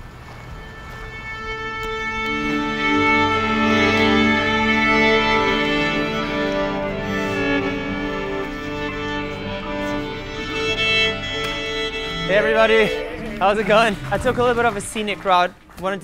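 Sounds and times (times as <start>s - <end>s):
orchestral strings sustained notes: 0.1s - 16.0s.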